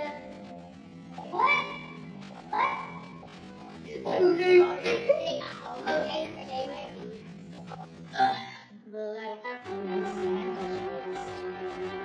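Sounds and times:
background music: 0.0s - 8.6s, 9.4s - 12.0s.

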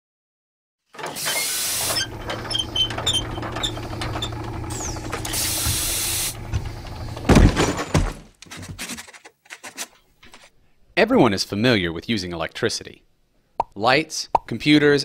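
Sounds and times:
clicks and clanks: 1.0s - 10.5s
steam hiss: 1.1s - 2.0s, 4.8s - 6.5s
machine hum: 1.1s - 8.2s
heavy low thump: 5.0s - 8.2s.

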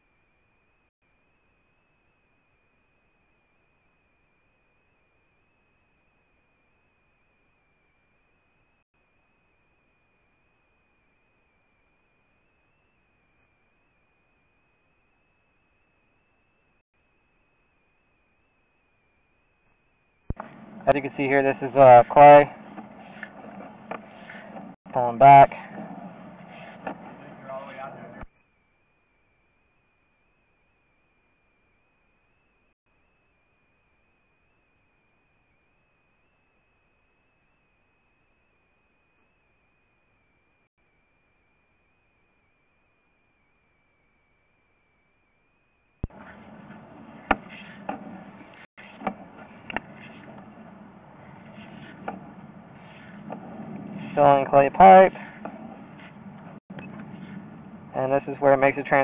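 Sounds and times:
faint high whine: 0.0s - 59.0s.

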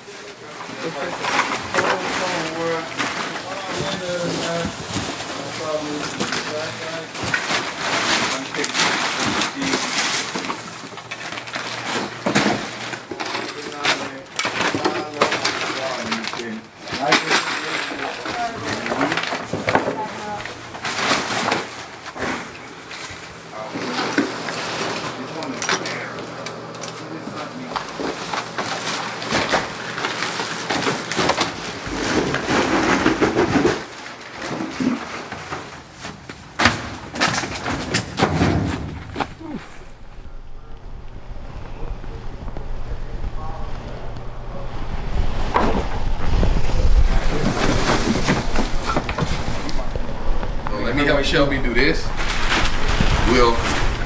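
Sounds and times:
plastic bags and paper rustling: 0.0s - 40.7s, 45.3s - 54.0s.

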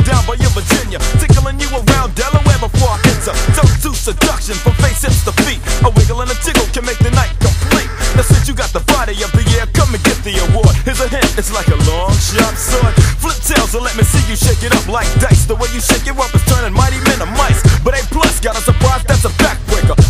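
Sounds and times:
rapping over a drum beat: 0.0s - 20.0s
steady bass line: 0.0s - 20.0s.

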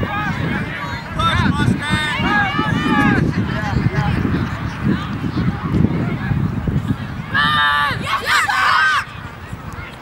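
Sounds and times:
distant voices shouting: 0.0s - 3.9s, 7.1s - 9.4s
wind buffeting microphone: 0.0s - 10.0s.

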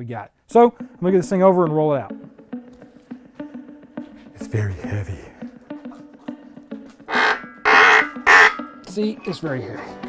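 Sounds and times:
engine stand pivot squealing: 7.1s - 8.8s.

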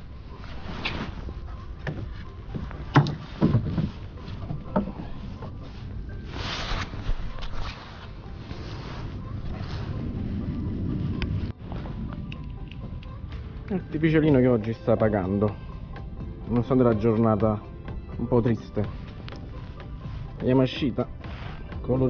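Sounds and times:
low rumble: 0.0s - 22.0s
fishing gear knocking in boat: 1.8s - 5.5s.

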